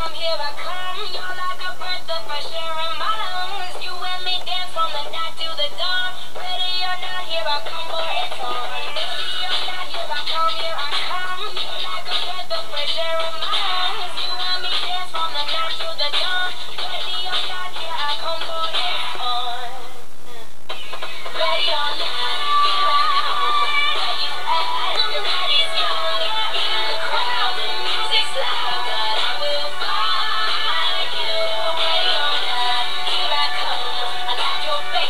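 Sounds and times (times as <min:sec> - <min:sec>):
synth-pop song with auto-tuned singing: 0:00.0 - 0:35.0.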